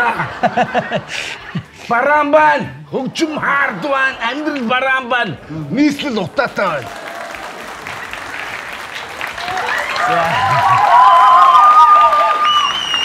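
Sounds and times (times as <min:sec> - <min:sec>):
audience applauding: 0:06.4 - 0:13.0.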